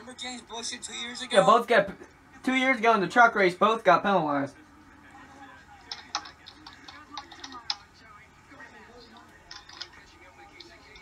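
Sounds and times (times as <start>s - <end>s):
faint television speech: 0.0s - 11.0s.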